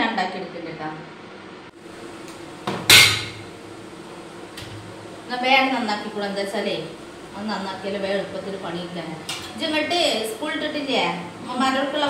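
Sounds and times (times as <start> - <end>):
steel kitchenware clanking: 2.9 - 3.5.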